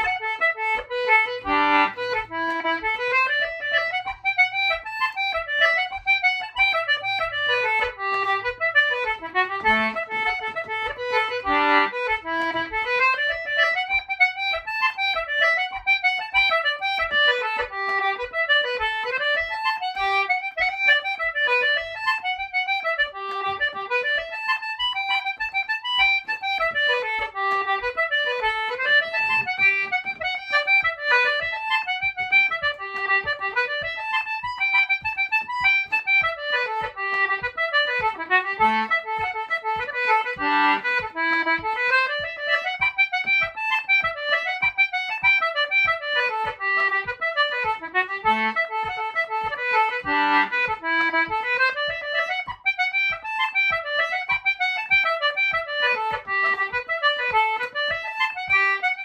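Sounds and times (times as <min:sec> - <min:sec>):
concertina dance tune: 0:00.0 - 0:59.0.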